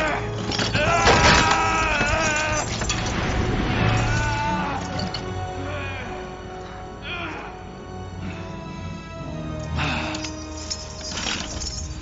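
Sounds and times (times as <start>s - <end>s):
dramatic orchestral music: 0.0s - 12.0s.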